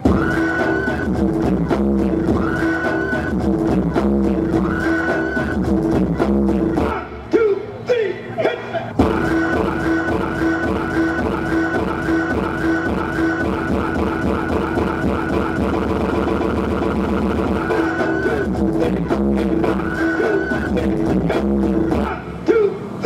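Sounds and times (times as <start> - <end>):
electronic dance music on synthesizer: 0.0 - 22.7.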